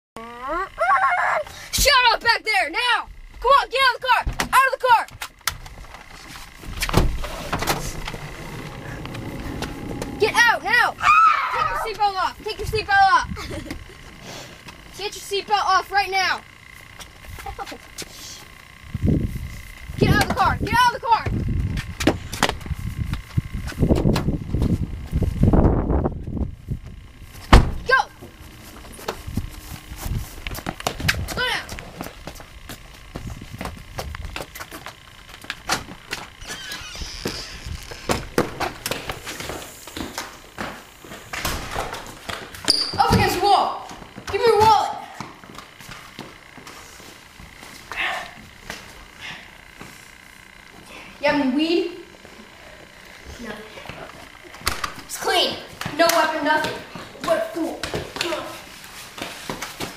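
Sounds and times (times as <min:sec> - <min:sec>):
loud sharp thunk: 0:27.5 - 0:27.8
scuffling and handling noise: 0:28.2 - 0:35.1.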